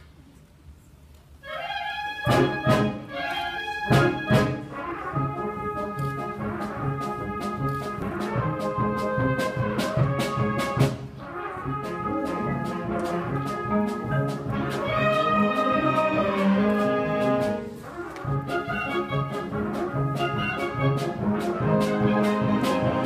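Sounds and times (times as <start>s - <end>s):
brass chords: 1.4s - 23.0s.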